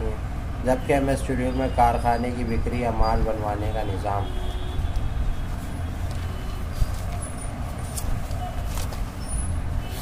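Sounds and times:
paper rustling: 5.5s - 10.0s.

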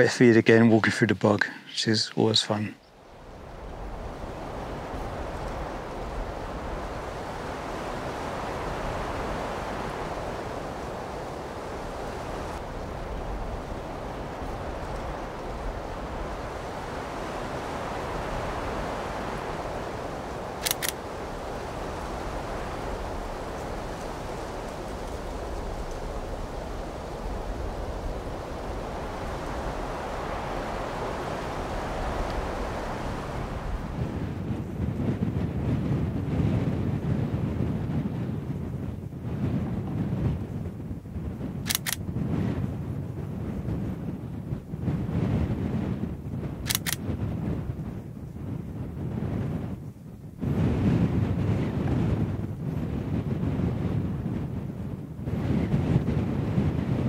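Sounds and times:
wind blowing in gusts: 0.0s - 57.0s
wind buffeting microphone: 0.0s - 57.0s
short click: 20.6s - 21.0s, 41.6s - 42.0s, 46.6s - 47.0s.

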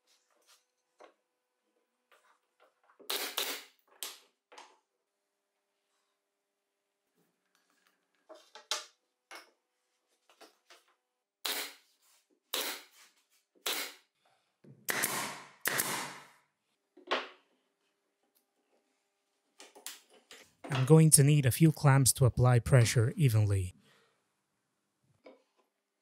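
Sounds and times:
nail gun firing into plywood: 14.9s - 16.4s.

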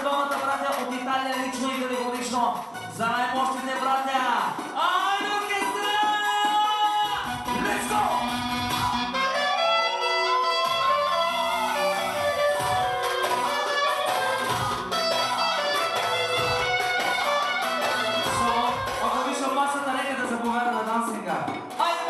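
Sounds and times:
live band dance music: 0.0s - 22.0s
clarinet melody sliding in pitch: 7.2s - 19.2s.

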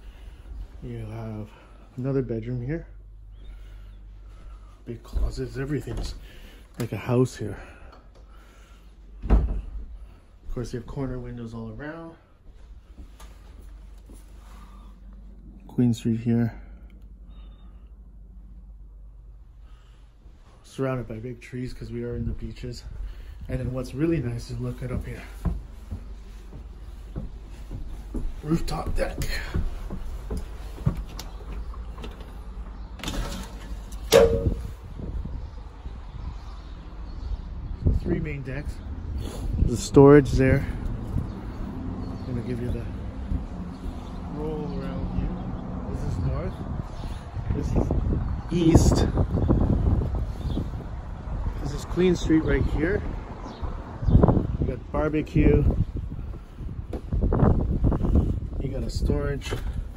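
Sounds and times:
low outdoor rumble: 0.0s - 53.2s
wind rumbling on microphone: 33.9s - 59.9s.

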